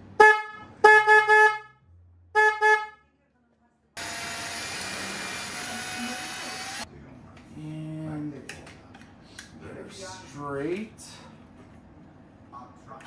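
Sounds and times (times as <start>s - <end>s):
cordless drill running: 4.0s - 6.9s.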